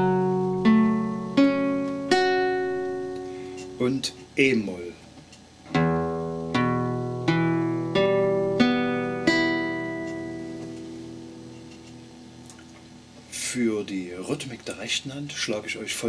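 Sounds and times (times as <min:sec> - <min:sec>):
classical guitar chord plucked: 0:00.0 - 0:04.3, 0:05.6 - 0:13.3.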